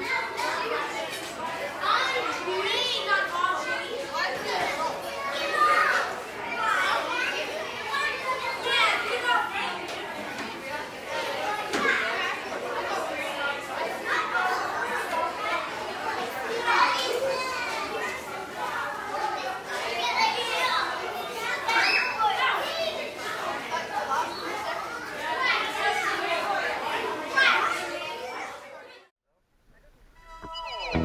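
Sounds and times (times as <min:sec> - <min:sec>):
many voices talking and calling: 0:00.0 - 0:29.1.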